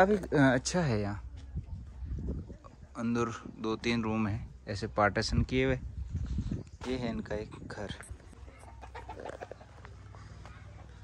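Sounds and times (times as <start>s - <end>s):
chicken clucking: 8.0s - 11.0s.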